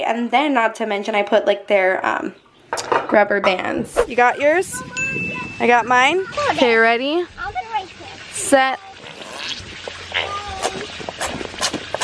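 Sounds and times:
gel squirting from tubes: 0:09.1 - 0:12.0.

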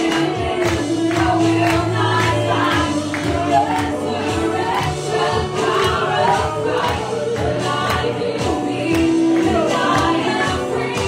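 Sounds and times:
congregation singing: 0:00.0 - 0:11.0
steady drum beat: 0:00.0 - 0:11.0
worship band playing: 0:00.0 - 0:11.0.

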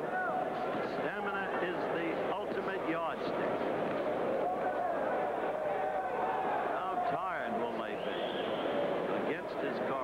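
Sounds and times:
crowd hubbub: 0:00.0 - 0:10.0
crowd shouting: 0:04.3 - 0:08.8.

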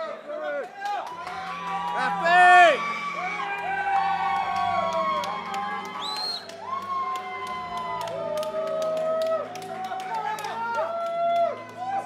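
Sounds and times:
crowd cheering and whooping: 0:01.1 - 0:12.0
loud arena music: 0:01.1 - 0:12.0
shrill whoop: 0:01.5 - 0:09.5.

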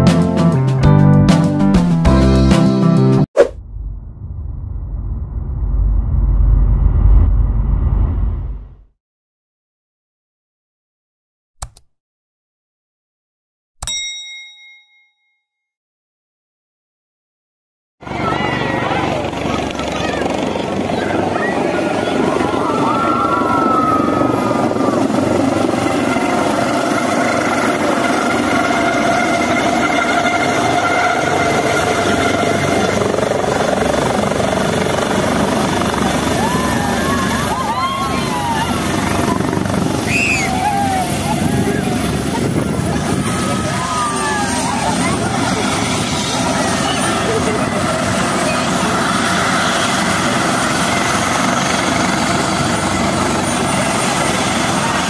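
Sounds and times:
turbine whine: 0:03.4 - 0:08.9
crowd calling and shouting: 0:18.0 - 0:26.0, 0:35.6 - 0:55.0
helicopter rotor noise: 0:18.0 - 0:55.0.

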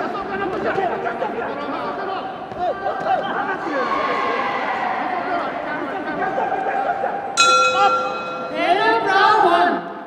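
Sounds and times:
crowd voices: 0:00.0 - 0:10.0
boxing ring bell ringing: 0:07.4 - 0:09.0.

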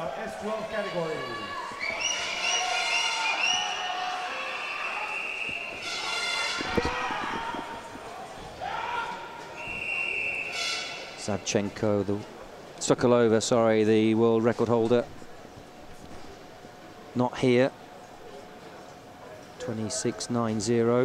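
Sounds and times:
long whistle blast: 0:04.5 - 0:06.7, 0:09.6 - 0:11.2.

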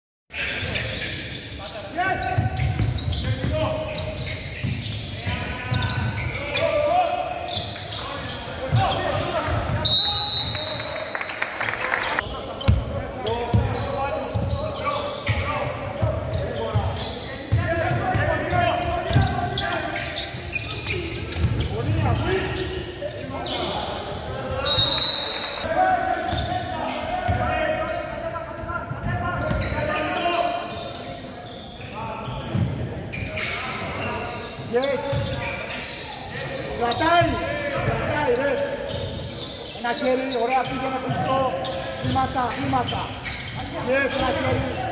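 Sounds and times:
players' voices and calls: 0:00.4 - 0:44.9
referee's whistle blasts: 0:09.8 - 0:11.1, 0:24.6 - 0:25.7.

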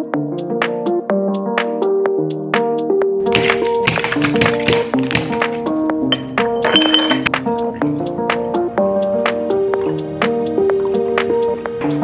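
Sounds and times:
background music: 0:00.0 - 0:12.0
ice cubes clinking into glass jar: 0:06.1 - 0:07.3.

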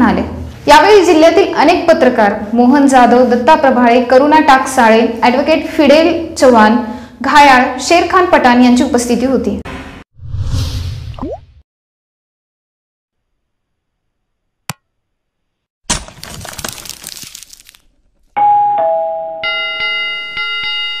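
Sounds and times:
short whoosh: 0:10.2 - 0:11.2
bright bell chime: 0:18.4 - 0:21.0
falling two-note ding-dong: 0:18.4 - 0:21.0.

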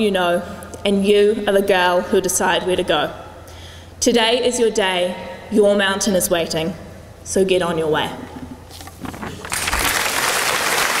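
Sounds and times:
audience applauding: 0:09.4 - 0:11.0.

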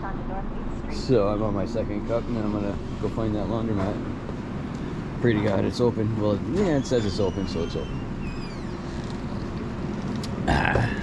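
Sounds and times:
highway traffic rumble: 0:00.0 - 0:11.0.

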